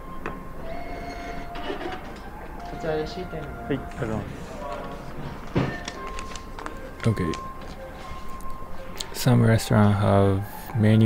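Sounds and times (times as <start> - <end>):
receipt printer whirring: 0.6 - 8.6.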